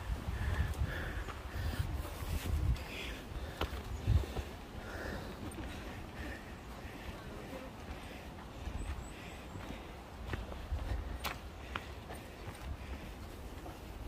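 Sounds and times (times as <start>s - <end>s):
footsteps on a trail: 0.0s - 14.0s
faint voices: 4.2s - 12.4s.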